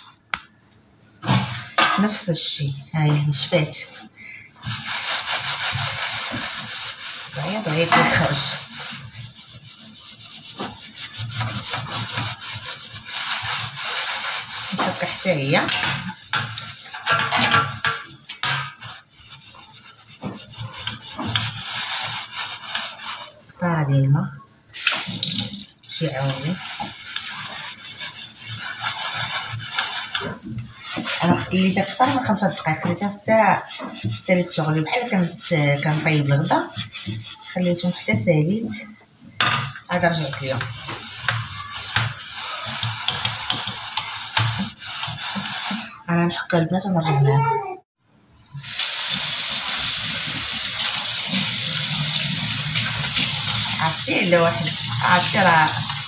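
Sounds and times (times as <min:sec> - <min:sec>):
scrubbing silver tray: 0:01.2 - 0:23.4, 0:24.7 - 0:39.0, 0:39.9 - 0:47.4, 0:48.6 - 0:56.0.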